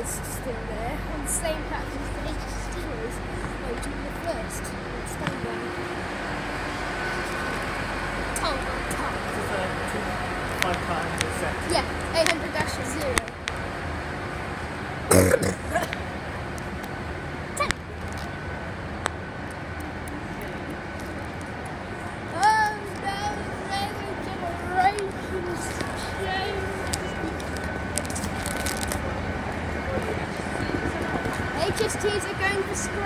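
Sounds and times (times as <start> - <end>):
steady background hum: 0.0 - 33.0.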